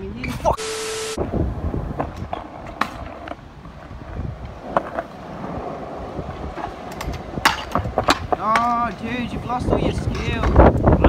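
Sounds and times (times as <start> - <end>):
wind on microphone: 1.1 - 11.0
scooter wheels rolling on concrete: 1.2 - 11.0.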